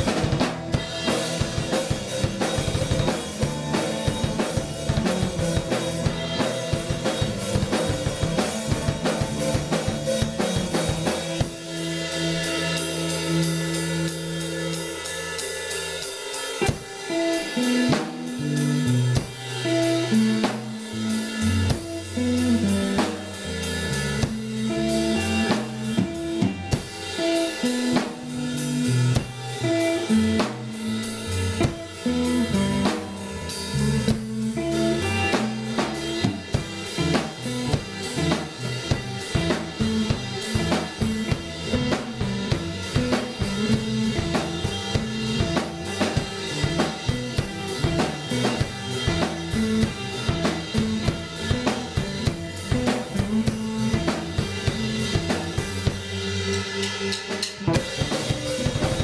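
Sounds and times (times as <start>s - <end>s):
drum kit: 0.0s - 59.0s
electric bass guitar: 0.0s - 59.0s
electric guitar: 0.0s - 59.0s.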